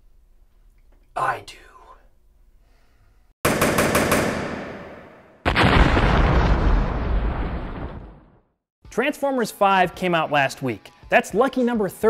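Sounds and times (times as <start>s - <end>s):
sharp gunfire cracks: 3.4s - 6.9s.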